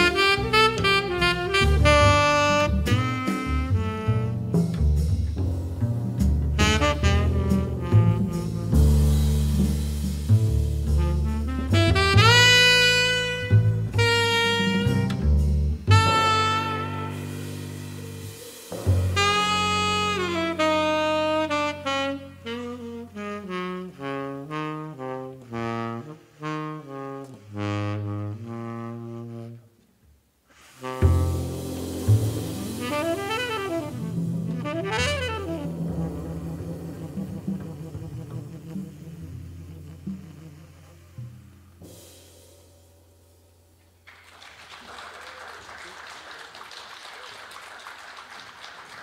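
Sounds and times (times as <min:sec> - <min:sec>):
tenor saxophone playing jazz: 0:00.0 - 0:05.1, 0:06.5 - 0:09.5, 0:10.8 - 0:29.9, 0:30.6 - 0:41.9.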